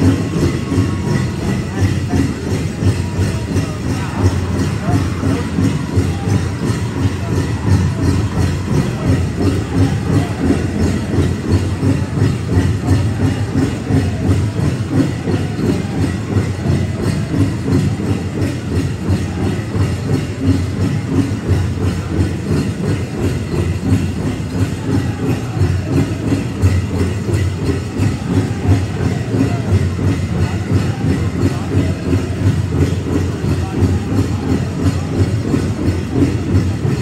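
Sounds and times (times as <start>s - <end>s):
big drum beating: 0.0s - 37.0s.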